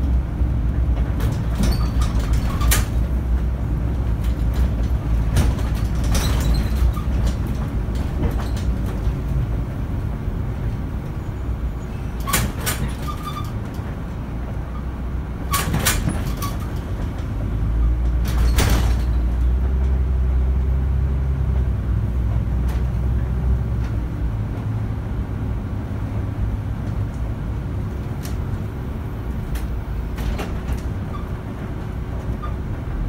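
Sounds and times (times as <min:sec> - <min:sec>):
bus body rattling: 0:00.0 - 0:33.0
bus engine rumble: 0:00.0 - 0:33.0.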